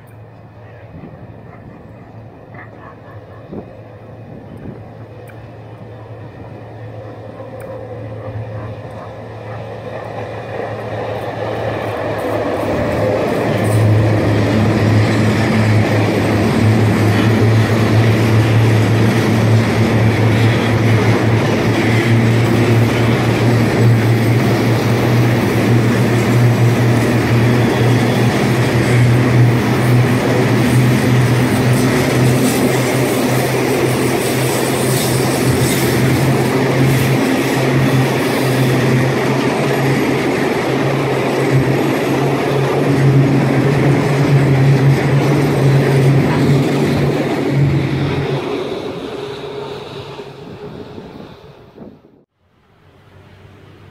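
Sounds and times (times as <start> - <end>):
train wagons rumbling on rails: 0.0 - 52.3
locomotive engine drone: 0.0 - 53.9.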